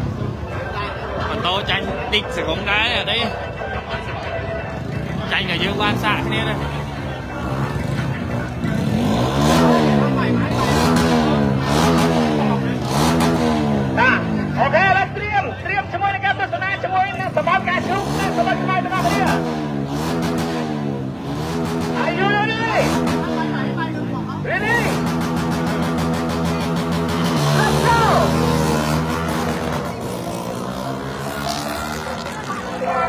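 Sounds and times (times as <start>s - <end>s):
voices: 0.0s - 33.0s
motorcycle engine revving: 4.7s - 14.7s, 17.2s - 33.0s.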